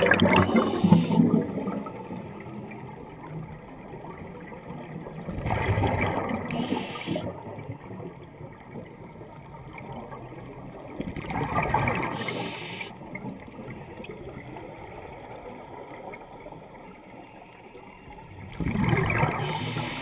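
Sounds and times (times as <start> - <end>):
underwater bubbles gurgling: 0.0 - 20.0
underwater water noise: 0.0 - 20.0.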